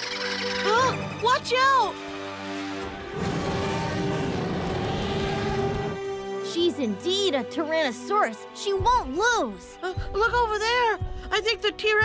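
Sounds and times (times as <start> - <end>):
cartoon dinosaur roaring: 3.1 - 6.0.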